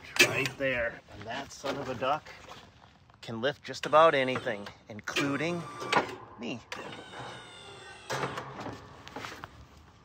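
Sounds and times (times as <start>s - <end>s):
electric actuator whining: 3.8s - 8.6s.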